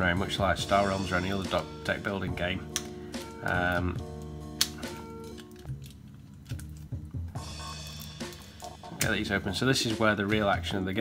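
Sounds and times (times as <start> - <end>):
music with held notes: 0.6 - 10.5
card wrapper clicks: 2.6 - 7.0
wrapper rustling: 3.2 - 9.0.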